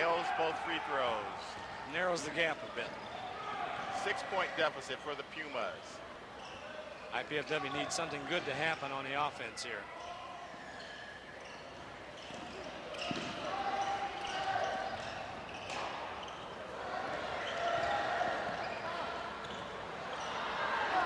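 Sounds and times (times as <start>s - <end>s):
voices echoing in hall: 0.0s - 21.0s.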